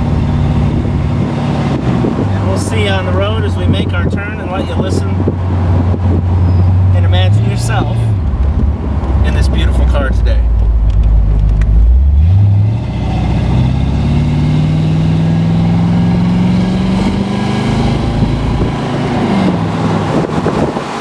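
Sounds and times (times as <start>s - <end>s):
car engine accelerating: 0.0s - 21.0s.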